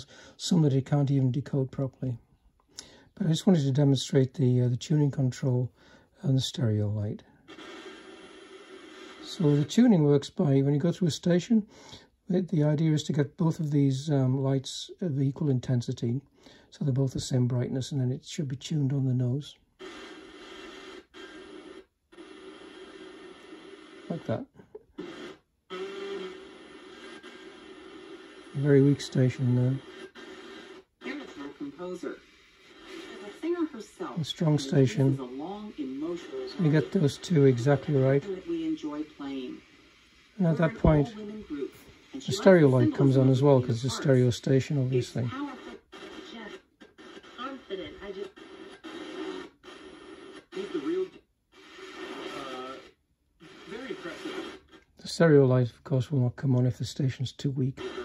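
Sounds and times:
faint radio hiss: 0.0 - 58.0
radio tuner steady tone: 7.5 - 10.0, 18.9 - 54.8, 57.7 - 58.0.

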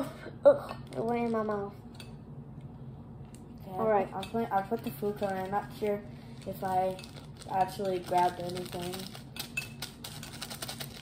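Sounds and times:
plastic packets clicking and crinkling: 4.7 - 11.0.

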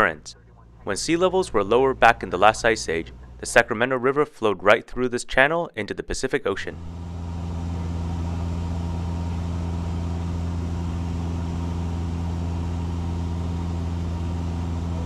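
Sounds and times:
airplane engine drone in cockpit: 0.0 - 3.8, 6.7 - 15.0.

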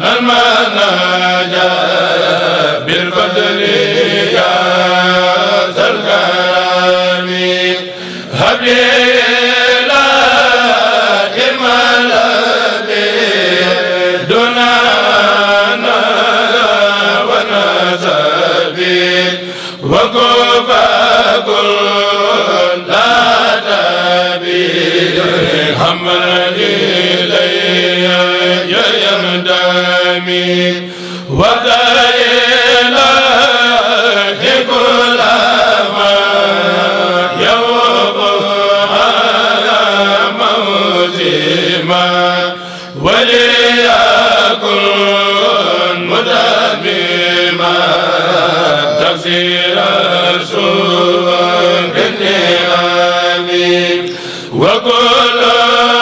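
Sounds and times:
men's choir chanting: 0.0 - 56.0.

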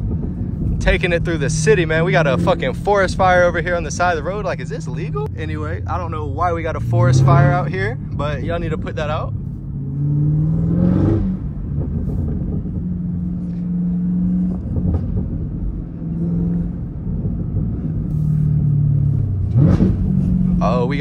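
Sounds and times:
car engine revving inside cabin: 0.0 - 21.0.

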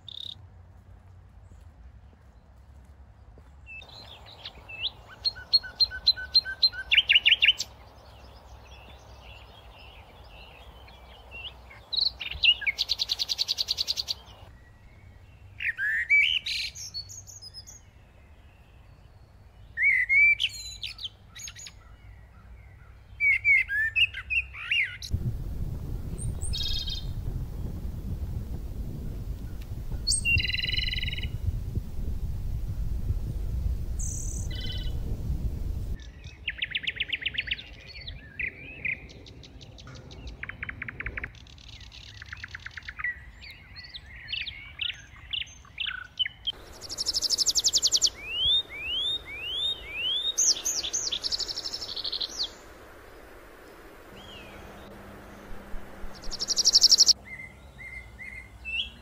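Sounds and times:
songbirds chirping and trilling: 0.0 - 0.4, 1.4 - 59.0
low rumble: 25.1 - 36.0, 48.0 - 57.2.

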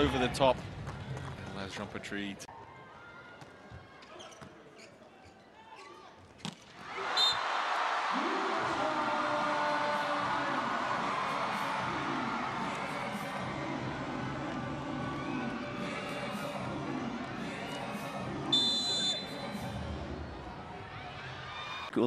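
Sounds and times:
crowd cheering and shouting: 6.8 - 22.0.

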